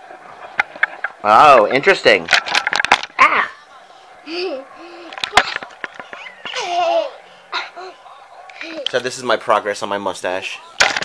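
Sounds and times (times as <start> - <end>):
child laughing: 6.1 - 7.9
child giggling: 6.1 - 8.0.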